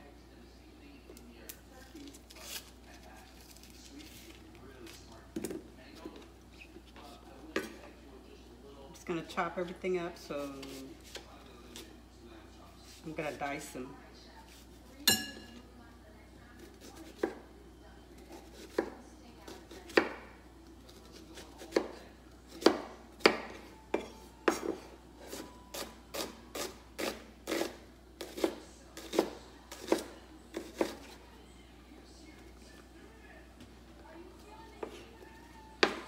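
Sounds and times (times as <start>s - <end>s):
knife chopping on wooden board: 21.7s - 22.0s, 22.6s - 31.0s.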